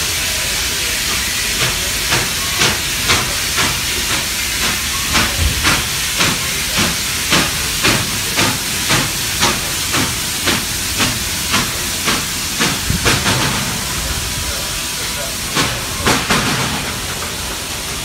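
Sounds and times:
steam hissing: 0.0 - 18.0
steam locomotive exhaust beats: 0.0 - 18.0.

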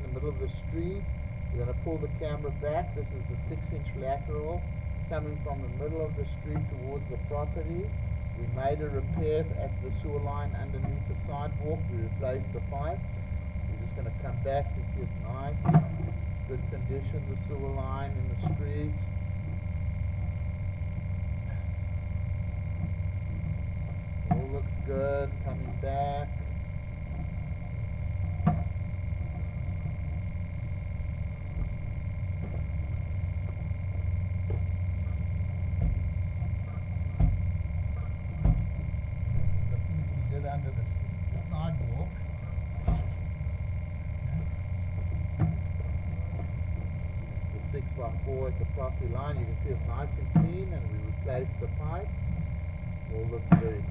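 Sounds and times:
low engine-like drone: 0.0 - 53.9
thin high whine: 0.0 - 53.9.

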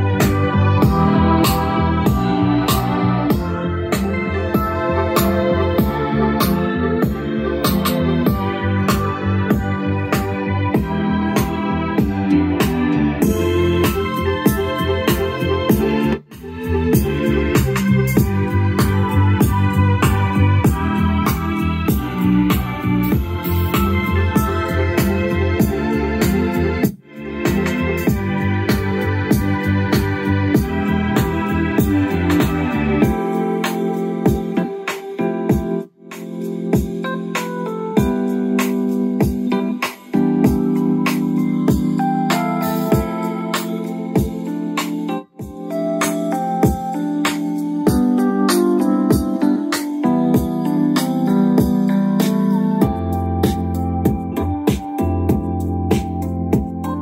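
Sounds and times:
music through speaker: 0.0 - 57.0.

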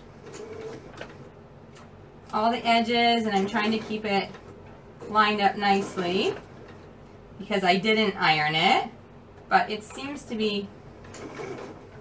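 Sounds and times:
sewing machine motor hum: 0.0 - 1.4, 2.3 - 6.9, 9.8 - 12.0
sewing machine clicks: 11.0 - 12.0.

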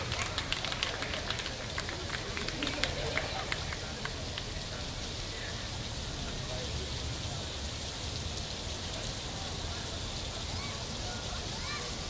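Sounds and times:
fountain water splashing into trough: 0.0 - 12.0.

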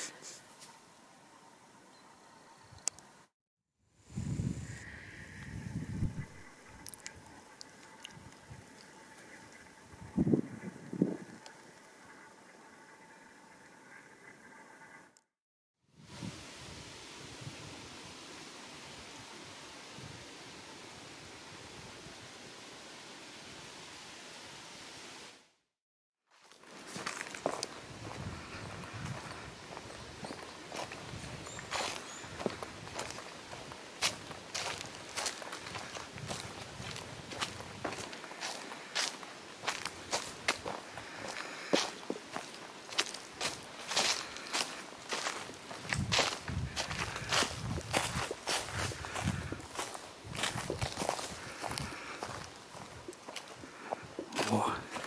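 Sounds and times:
steady hiss: 16.0 - 25.4
footsteps crunching dry leaves: 26.3 - 55.0.

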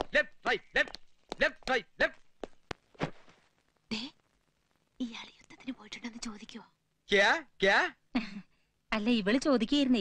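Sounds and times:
woman whispering: 5.0 - 6.8.

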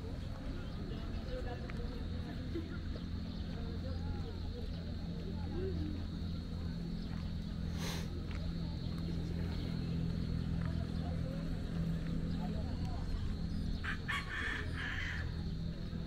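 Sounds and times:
steady low hum: 0.0 - 16.0
rooster crowing: 13.8 - 15.3.

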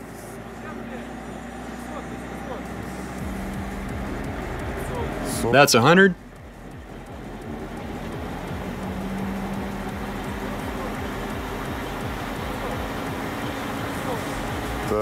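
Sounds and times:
car wheel spinning: 0.0 - 15.0.

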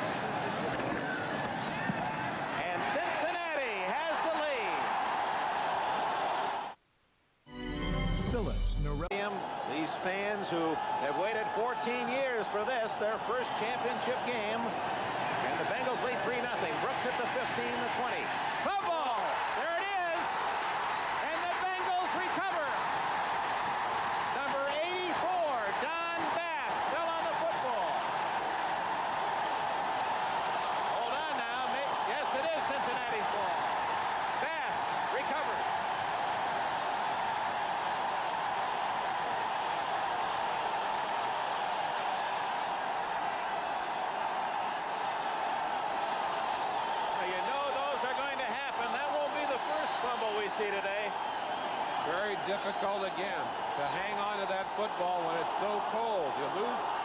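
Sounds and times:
stadium crowd cheering: 0.0 - 6.8, 7.8 - 57.0
shouted voices: 2.6 - 6.7, 15.4 - 44.5, 45.2 - 57.0.

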